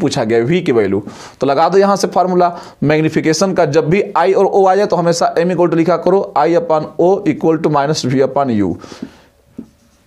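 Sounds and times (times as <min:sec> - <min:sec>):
man talking: 0:00.0 - 0:08.9.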